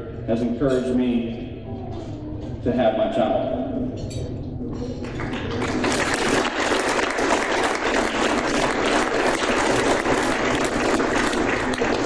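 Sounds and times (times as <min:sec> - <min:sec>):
audience applauding: 0:05.0 - 0:12.0.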